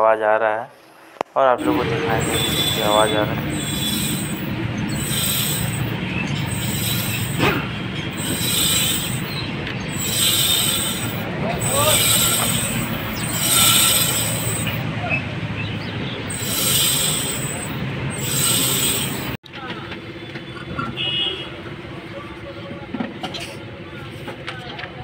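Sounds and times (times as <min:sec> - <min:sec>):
wheel scraping metal on metal: 0:01.6 - 0:14.8, 0:16.2 - 0:19.4.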